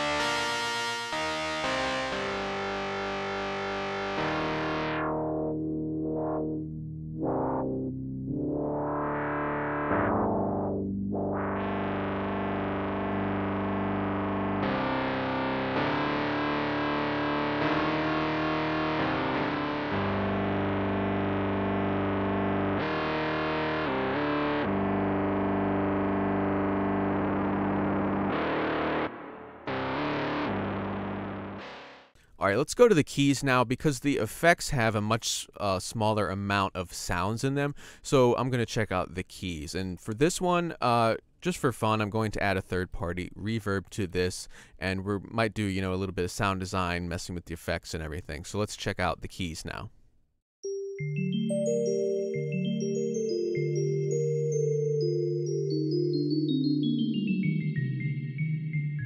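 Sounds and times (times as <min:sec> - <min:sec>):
synthesizer sustained notes: 0:00.0 - 0:32.0, 0:51.0 - 0:59.0.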